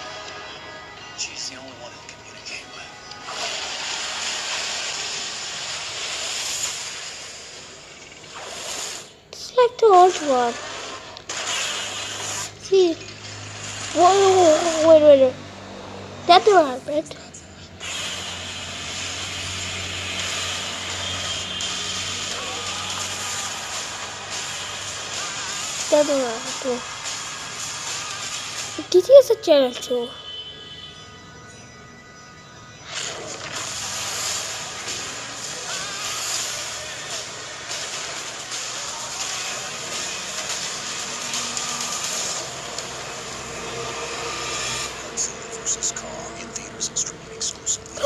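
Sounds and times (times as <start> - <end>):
faint music: 0.0 - 48.0.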